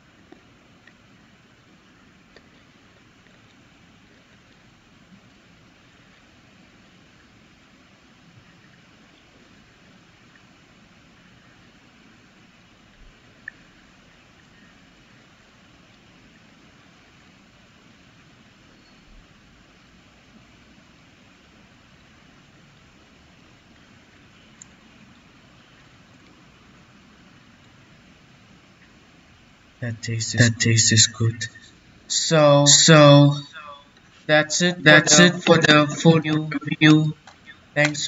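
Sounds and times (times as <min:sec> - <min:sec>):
faint room hiss: 0:00.0 - 0:38.0.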